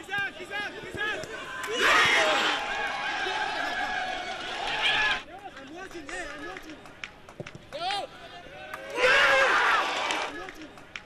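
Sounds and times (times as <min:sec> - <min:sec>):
players shouting: 0:00.0 - 0:06.6, 0:07.7 - 0:10.7.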